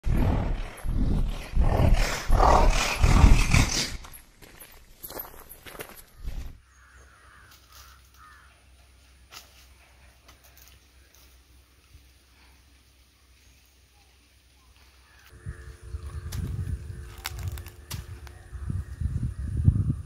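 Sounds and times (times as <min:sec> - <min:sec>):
loud deep rumbling: 0:00.0 - 0:04.0
faint outdoor ambience: 0:00.1 - 0:20.0.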